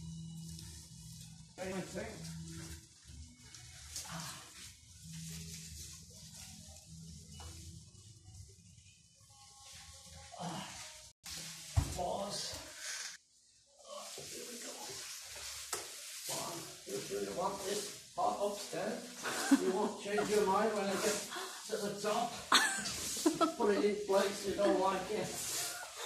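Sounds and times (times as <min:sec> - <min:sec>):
shuffling movement: 0:14.1 - 0:26.0.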